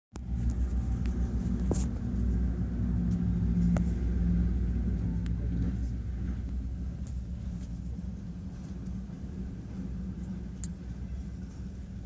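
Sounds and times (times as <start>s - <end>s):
diesel locomotive engine rumbling: 0.2s - 12.0s.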